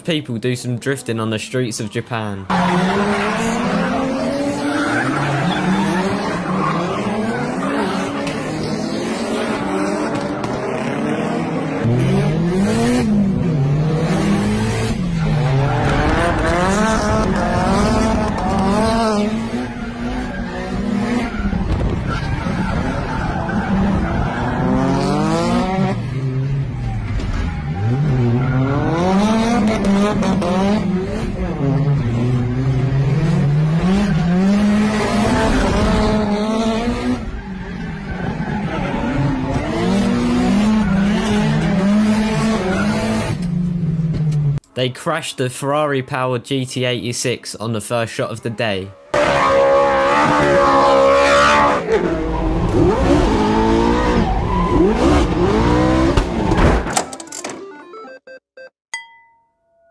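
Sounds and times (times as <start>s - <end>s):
car engines revving hard: 2.5s - 44.6s, 49.1s - 56.9s.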